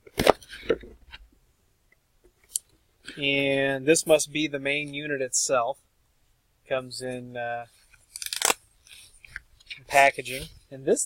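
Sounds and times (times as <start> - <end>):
packaging crinkling: 8.1 - 8.6.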